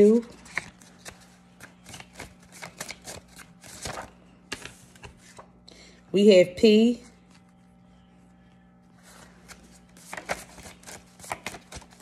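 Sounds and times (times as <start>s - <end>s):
low steady hum: 0.0s - 12.0s
cards rustling and ticking: 0.2s - 5.6s, 9.2s - 12.0s.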